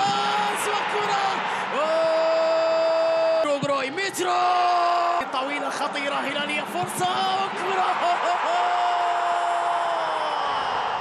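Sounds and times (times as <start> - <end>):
commentator long shout: 0.0 - 10.5
stadium crowd noise: 0.0 - 11.0.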